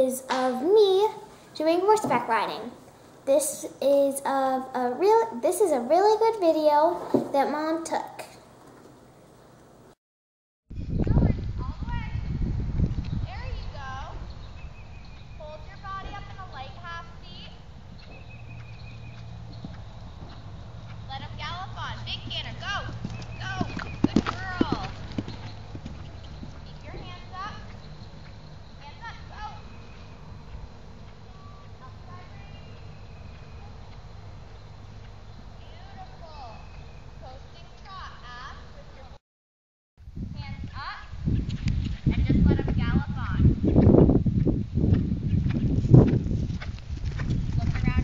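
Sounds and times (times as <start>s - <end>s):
horse hoofbeats on grass: 15.5s - 31.5s, 41.7s - 48.0s.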